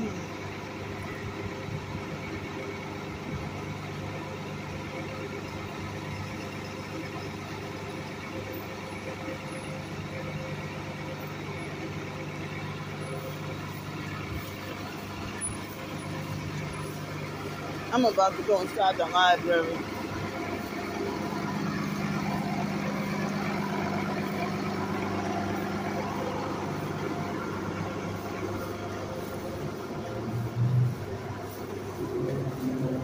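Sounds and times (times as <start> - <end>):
bus engine idling: 0.0 - 33.0.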